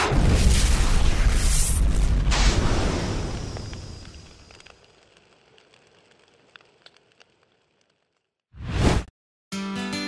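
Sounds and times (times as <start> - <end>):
explosion boom: 0.0 - 4.0
faint crackles: 1.4 - 8.5.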